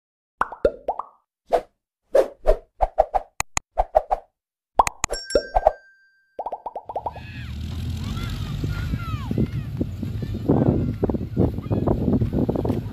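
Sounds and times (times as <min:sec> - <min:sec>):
short pops and plops: 0:00.4 - 0:01.2, 0:04.8 - 0:05.8, 0:06.4 - 0:07.2
ringing ding: 0:05.1 - 0:06.4.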